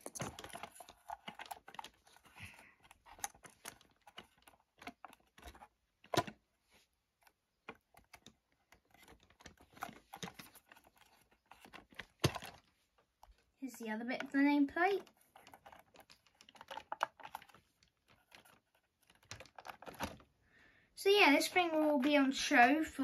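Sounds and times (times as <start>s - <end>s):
paper label rustling: 7.2s - 20.3s.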